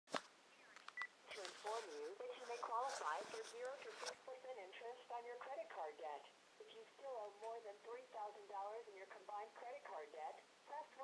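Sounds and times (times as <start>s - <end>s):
automated voice through phone speaker: 1.3s - 11.0s.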